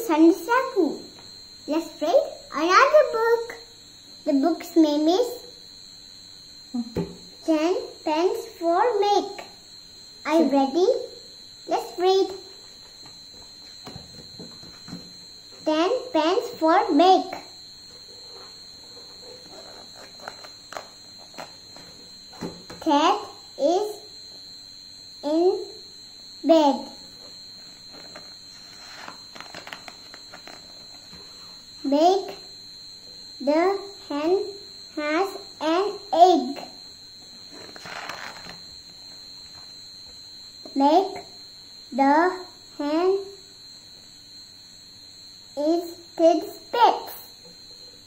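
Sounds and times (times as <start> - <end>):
steady high-pitched whine: 0.0 - 48.0
paper rustling: 19.4 - 21.6, 27.8 - 31.1, 37.5 - 38.6.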